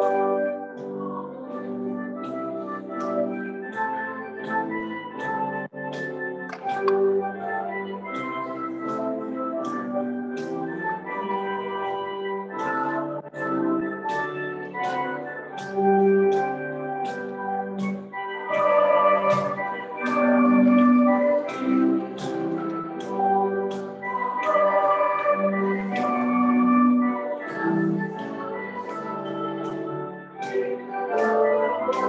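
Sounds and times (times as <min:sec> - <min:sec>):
organ playing a hymn: 0:00.0 - 0:32.0
sharp percussive taps: 0:06.0 - 0:07.3.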